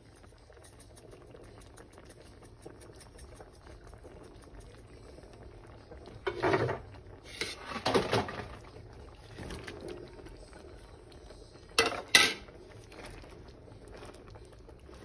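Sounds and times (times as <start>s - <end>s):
sauce bubbling in a pan: 0.0s - 15.0s.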